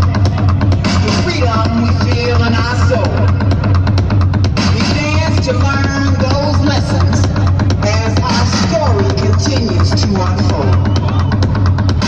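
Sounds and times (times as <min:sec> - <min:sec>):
deep bass: 0:00.0 - 0:12.0
loud dance music: 0:00.0 - 0:12.0.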